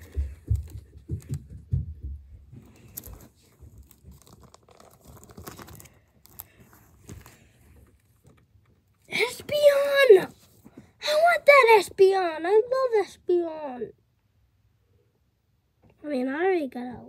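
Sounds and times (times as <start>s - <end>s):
plastic pages crinkling: 2.6s - 9.0s.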